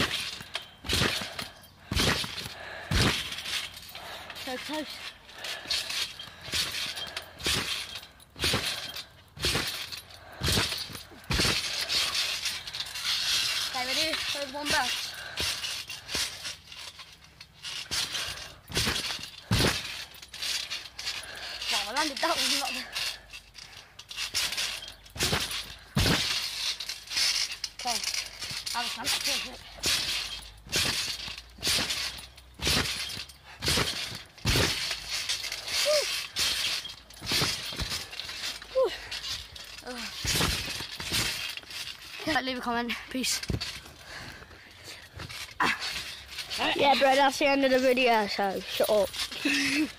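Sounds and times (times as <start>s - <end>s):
trampoline springs thudding and rattling: 0.0s - 49.9s.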